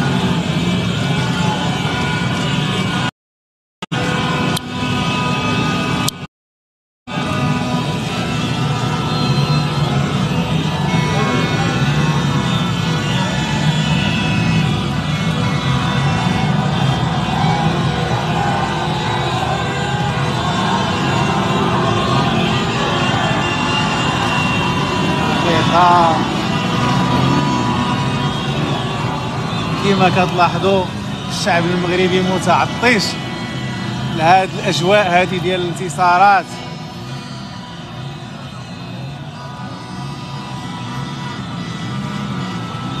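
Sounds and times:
crowd voices and chanting: 0:00.0 - 0:03.1, 0:07.1 - 0:43.0
vehicles: 0:00.0 - 0:03.1, 0:03.9 - 0:06.3, 0:07.1 - 0:43.0.

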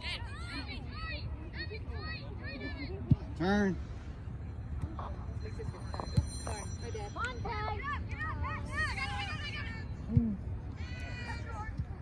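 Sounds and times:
open-field ambience: 0:00.0 - 0:12.0.

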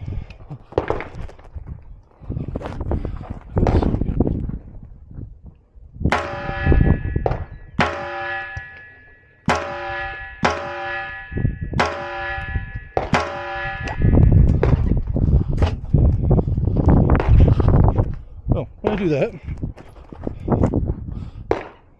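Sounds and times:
sharp metallic strikes ringing: 0:06.1 - 0:14.4.

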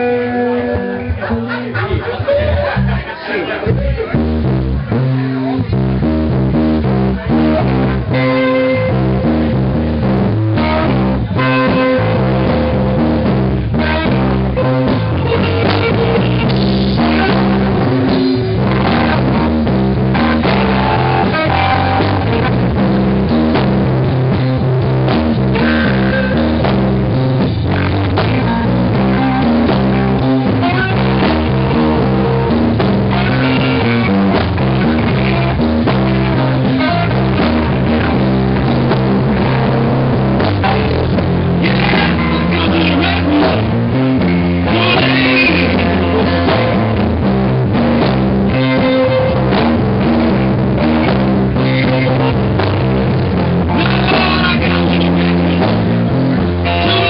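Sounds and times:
bass notes: 0:00.0 - 0:57.0
drums: 0:00.0 - 0:57.0
electric guitar blues riff: 0:00.0 - 0:57.0.

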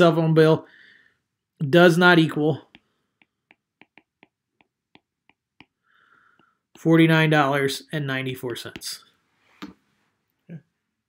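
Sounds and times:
stylus tapping on glass screen: 0:02.7 - 0:05.8.

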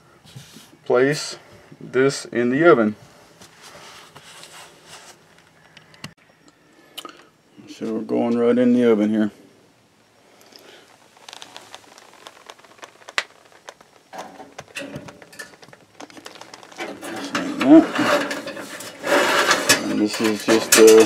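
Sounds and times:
wire basket rattling on metal rack: 0:14.1 - 0:21.0.

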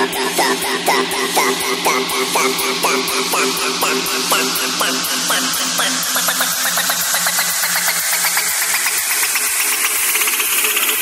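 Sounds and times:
house music build-up: 0:00.0 - 0:11.0.

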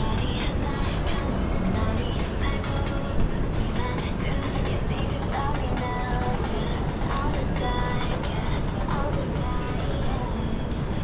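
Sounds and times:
low rumble of traffic: 0:00.0 - 0:11.0
passers-by's voices: 0:00.0 - 0:11.0.

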